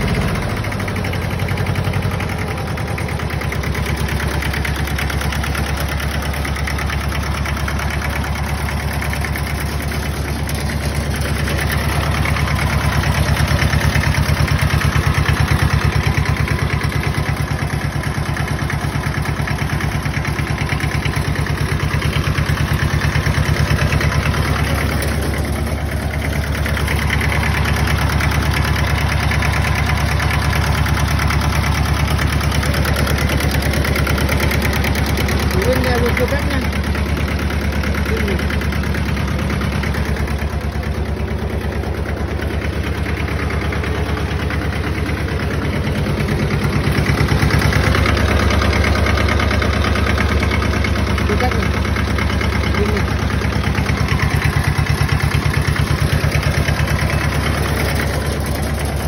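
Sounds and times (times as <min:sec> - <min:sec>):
tractor diesel engine idling: 0:00.0 - 0:59.0.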